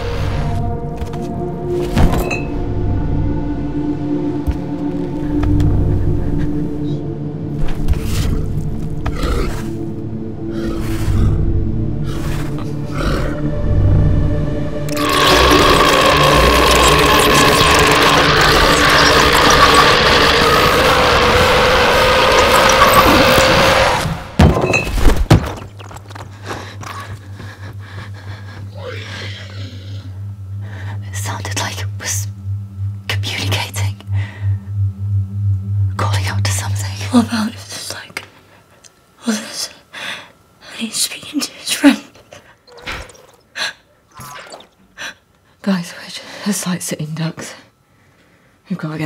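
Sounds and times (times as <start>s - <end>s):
dark film score drones: 0.0s - 24.4s, 25.8s - 44.3s.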